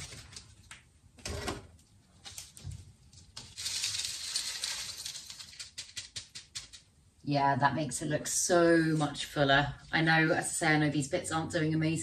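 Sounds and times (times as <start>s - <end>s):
grains settling with clicks: 2.3s - 6.9s
stony grains pouring into a pot: 3.5s - 5.6s.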